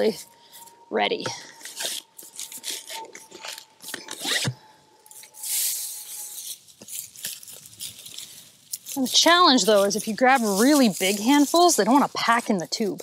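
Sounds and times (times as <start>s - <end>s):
hay crunching and rustling: 5.2s - 13.0s.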